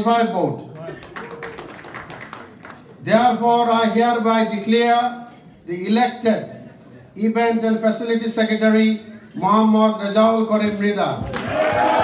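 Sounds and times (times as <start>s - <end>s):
people clapping: 0.7s - 3.0s, 11.2s - 12.0s.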